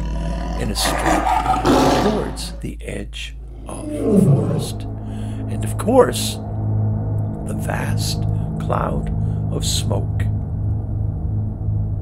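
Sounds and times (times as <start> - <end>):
steady low hum: 2.0 - 12.0.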